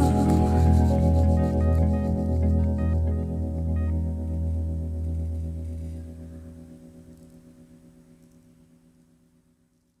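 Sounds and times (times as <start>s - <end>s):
band's sustained final chord: 0.0s - 8.0s.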